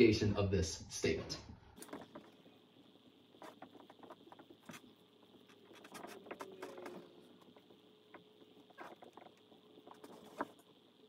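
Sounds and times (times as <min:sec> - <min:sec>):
marker scratching on whiteboard: 0:03.3 - 0:10.6.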